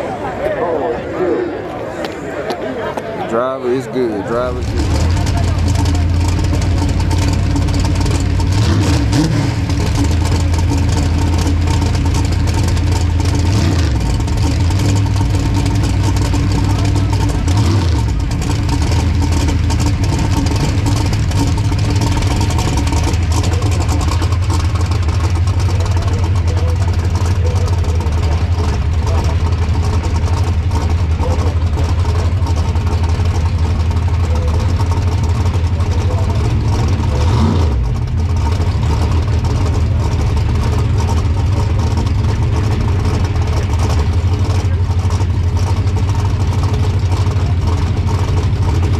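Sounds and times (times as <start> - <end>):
car engine idling loudly: 3.3 - 48.9.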